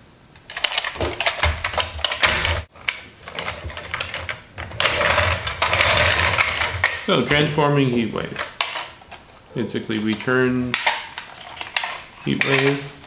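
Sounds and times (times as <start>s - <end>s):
plastic toy truck rattling: 0.5s - 9.0s, 10.0s - 13.0s.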